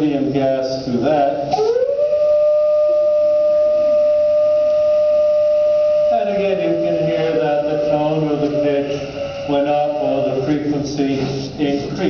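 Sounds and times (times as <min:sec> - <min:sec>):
organ pipe steady tone: 0:01.2 - 0:12.0.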